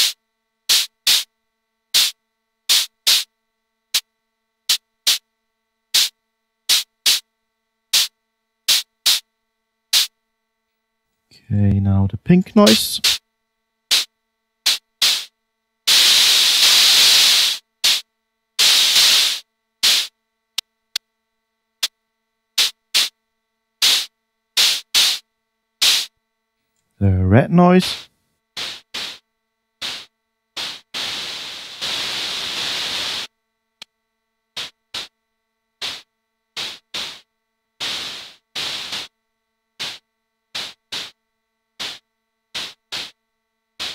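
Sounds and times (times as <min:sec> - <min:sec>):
percussive noise hiss hits: 0:00.0 - 0:01.3, 0:01.9 - 0:03.3, 0:04.7 - 0:05.2, 0:05.9 - 0:07.3, 0:07.9 - 0:09.3, 0:09.9 - 0:10.2, 0:12.5 - 0:13.2, 0:13.9 - 0:20.2, 0:22.6 - 0:23.2, 0:23.8 - 0:25.2, 0:25.8 - 0:26.2, 0:27.6 - 0:33.4, 0:34.5 - 0:35.2, 0:35.8 - 0:39.2, 0:39.8 - 0:41.2, 0:41.8 - 0:43.2.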